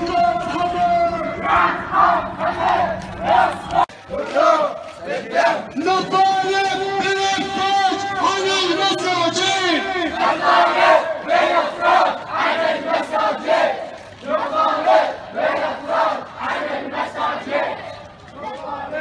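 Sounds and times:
crowd chanting slogans: 0.3s - 19.0s.

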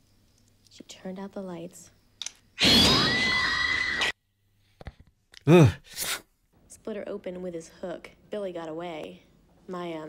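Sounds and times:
woman screaming: 2.6s - 4.1s.

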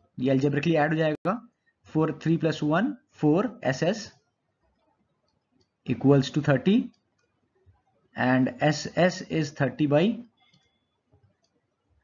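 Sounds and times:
man speaking: 0.1s - 4.2s, 5.9s - 7.0s, 8.2s - 10.3s
stylus clicks on pen tablet: 10.3s - 11.6s.

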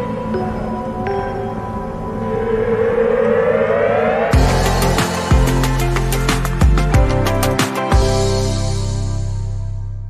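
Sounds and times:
synth swell rising in pitch: 0.0s - 6.6s.

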